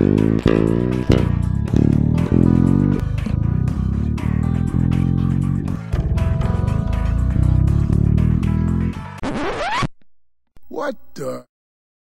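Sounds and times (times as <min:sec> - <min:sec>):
man speaking: 0:10.6 - 0:11.5.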